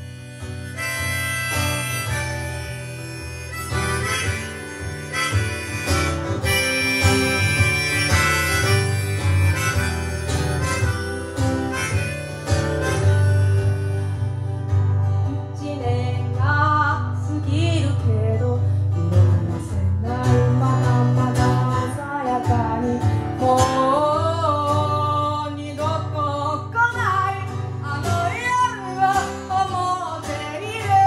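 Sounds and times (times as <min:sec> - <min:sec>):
harmonica playing: 0:00.0 - 0:15.3, 0:28.0 - 0:30.9
acoustic guitar: 0:00.0 - 0:31.0.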